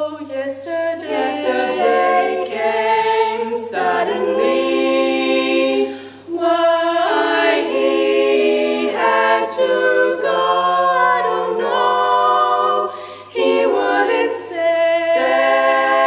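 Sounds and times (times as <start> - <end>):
women singing a cappella harmony: 0.0 - 16.0.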